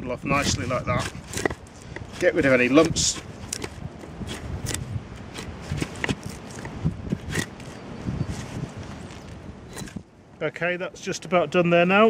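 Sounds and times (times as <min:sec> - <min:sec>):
draw knife shaving wood: 0:00.3 - 0:08.6.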